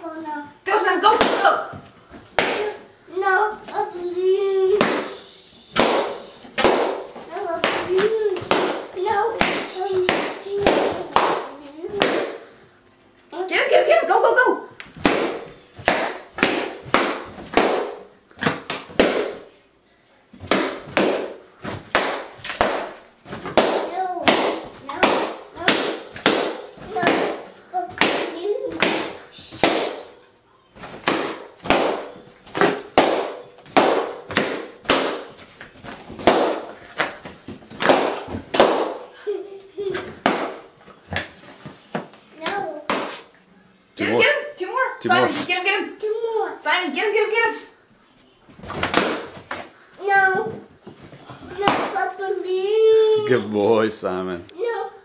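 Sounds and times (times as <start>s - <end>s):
balloons popping: 1.0s - 2.9s, 4.6s - 12.5s, 14.8s - 19.6s, 20.4s - 39.2s, 39.8s - 43.4s, 48.6s - 49.8s, 51.6s - 52.1s.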